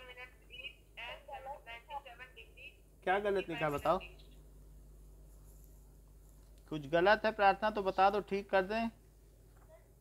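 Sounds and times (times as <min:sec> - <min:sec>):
telephone-like voice speaking: 0:03.2 - 0:04.2.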